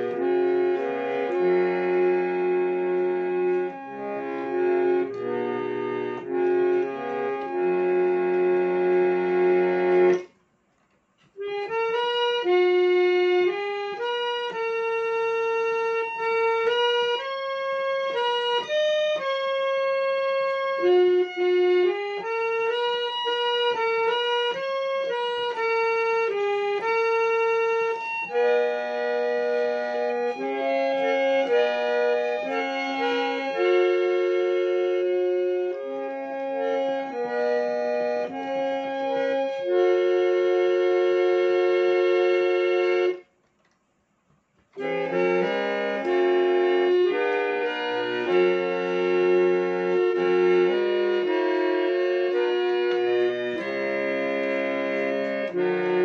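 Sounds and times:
reed organ playing a hymn: 0.0s - 43.8s, 44.4s - 56.0s.

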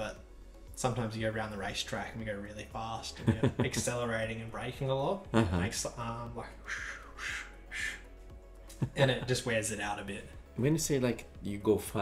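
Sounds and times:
man laughing: 3.2s - 3.9s, 5.3s - 5.8s
man making breathy hisses: 6.6s - 8.3s.

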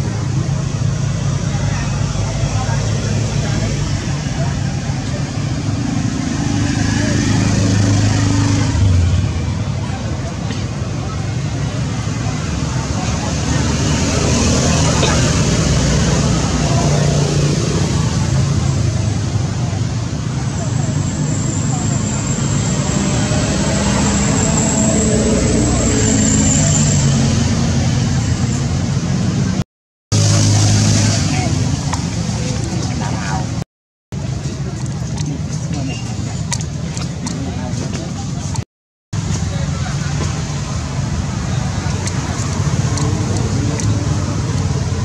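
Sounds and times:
people talking: 0.0s - 28.7s, 30.2s - 33.6s, 34.2s - 38.6s, 39.2s - 45.0s
road traffic: 0.0s - 45.0s.

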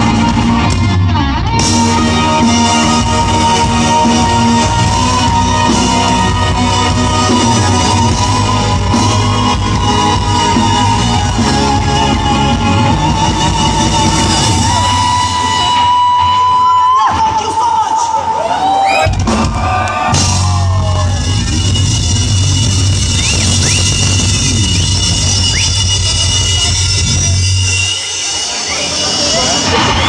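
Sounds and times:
crowd shouting and cheering: 0.0s - 30.0s
live rock band: 0.0s - 30.0s.

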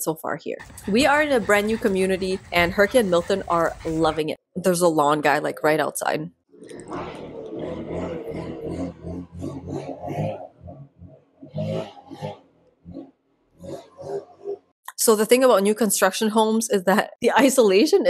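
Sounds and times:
muffled small engine running: 0.6s - 4.2s.

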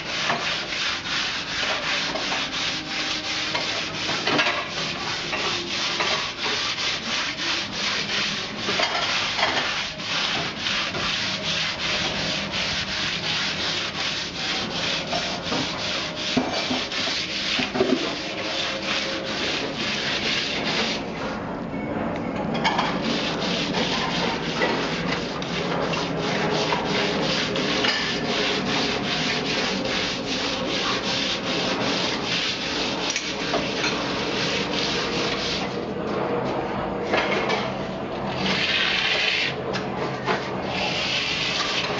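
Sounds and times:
tool scraping concrete wall: 0.0s - 21.1s, 22.6s - 35.8s, 37.1s - 41.9s.

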